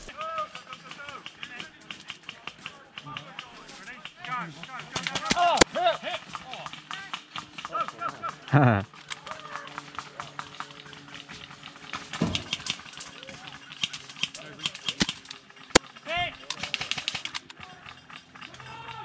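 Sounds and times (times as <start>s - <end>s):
faint indistinct voices: 0.1s - 19.0s
sharp clicks and snaps: 16.4s - 17.6s.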